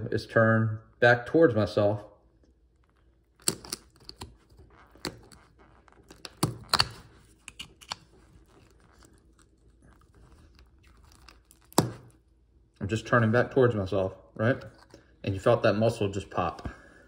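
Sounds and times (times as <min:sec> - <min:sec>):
shell crunching: 0:02.8 - 0:12.2.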